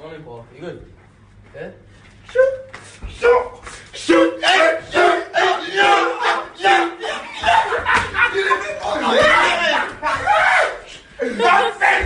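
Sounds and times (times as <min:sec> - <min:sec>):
young men shouting and chanting: 0:02.4 - 0:12.0.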